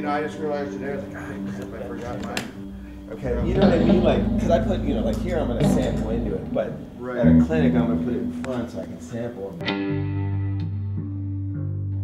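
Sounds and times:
electric guitar plucked notes: 0.0s - 12.0s
electric bass held low note: 2.7s - 12.0s.

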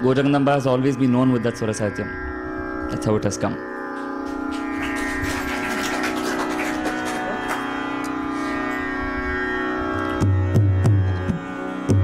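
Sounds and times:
steady drone with overtones: 0.0s - 12.0s.

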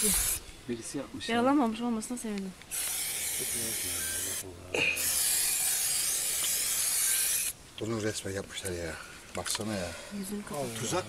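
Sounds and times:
aerosol spray can hissing: 0.0s - 0.4s, 2.7s - 4.4s, 5.0s - 7.5s.

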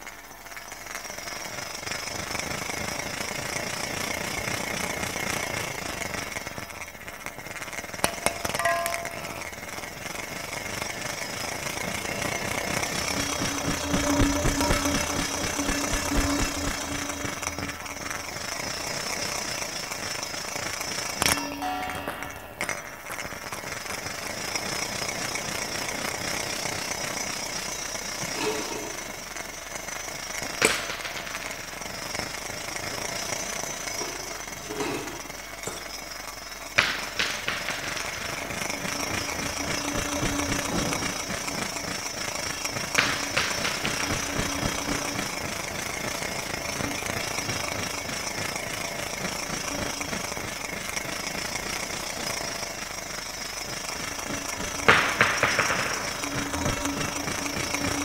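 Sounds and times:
ball rattling in metal bowl: 2.0s - 21.5s, 22.1s - 58.0s
metal bowl ringing: 8.1s - 9.7s, 12.1s - 19.0s, 21.2s - 23.6s.

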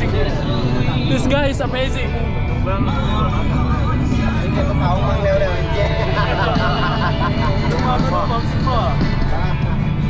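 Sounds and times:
bus engine and road noise: 0.0s - 10.0s
people's voices: 0.0s - 10.0s.

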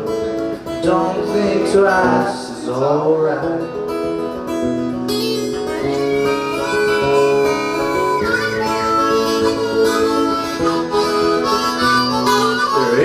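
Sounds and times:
acoustic guitar strumming: 0.0s - 13.0s
harmonica playing: 5.1s - 13.0s.

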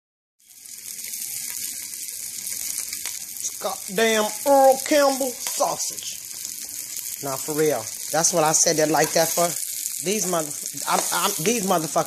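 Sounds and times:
sausages sizzling in a skillet: 0.4s - 12.0s
fat crackling and popping: 0.5s - 12.0s.

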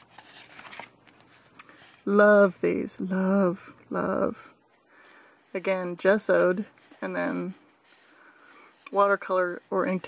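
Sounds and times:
paper page rustling: 0.0s - 2.1s.

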